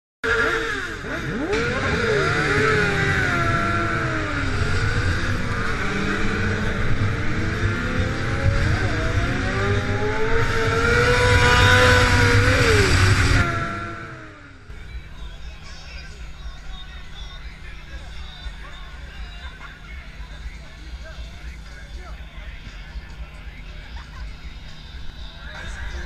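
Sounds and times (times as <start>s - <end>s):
motorbike engine revving: 0.2s - 26.0s.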